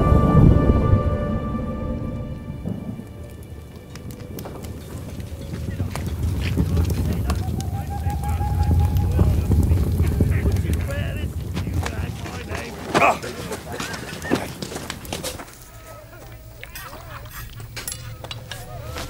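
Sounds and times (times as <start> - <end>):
low rumble: 0.0 - 13.9
campfire crackling: 0.0 - 19.0
faint voices: 2.7 - 19.0.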